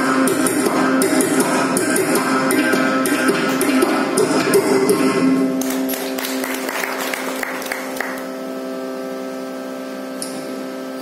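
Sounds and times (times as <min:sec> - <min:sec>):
steady hum: 0:00.0 - 0:11.0
scattered applause: 0:05.6 - 0:08.3.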